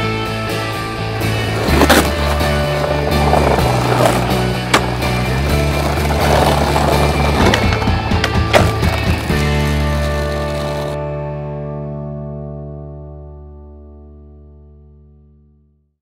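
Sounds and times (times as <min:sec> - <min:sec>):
music with bass line: 0:00.0 - 0:15.2
skateboard wheels rolling on paving: 0:01.1 - 0:11.0.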